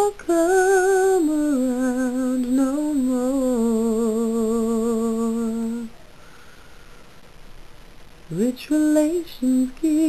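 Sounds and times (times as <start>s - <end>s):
woman singing: 0.0s - 6.0s, 8.3s - 10.0s.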